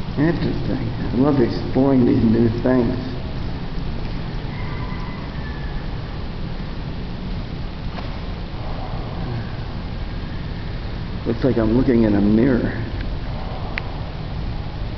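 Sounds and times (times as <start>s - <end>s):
steady background noise: 0.0s - 14.9s.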